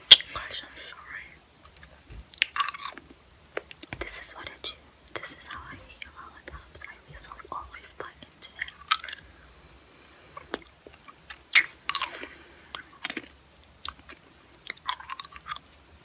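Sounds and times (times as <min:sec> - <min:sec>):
chewing: 0:08.5 - 0:09.2, 0:10.3 - 0:15.8
wet mouth smacks: 0:10.4 - 0:15.7.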